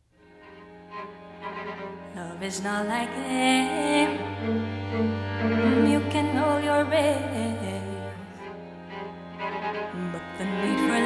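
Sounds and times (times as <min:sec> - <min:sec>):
string quartet bowed chords: 0:00.2 - 0:11.0.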